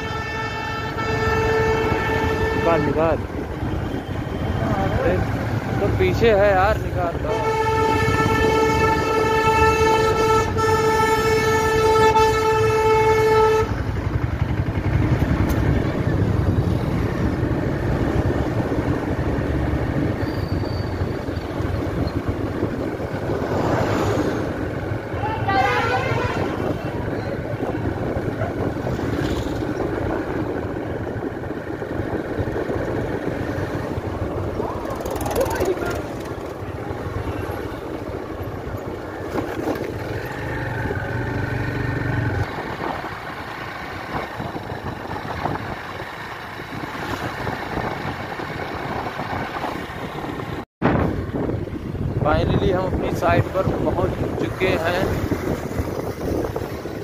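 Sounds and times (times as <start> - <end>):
vehicle horn long note: 0.0 - 3.1, 7.3 - 13.8, 25.3 - 26.8
wind and road noise: 0.0 - 57.0
motorcycle engine running: 13.4 - 19.8, 27.6 - 46.8.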